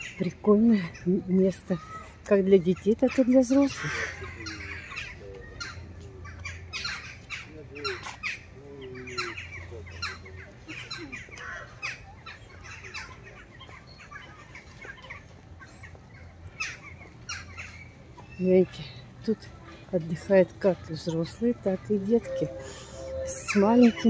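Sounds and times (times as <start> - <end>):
faint distant voices: 0.0 - 24.0.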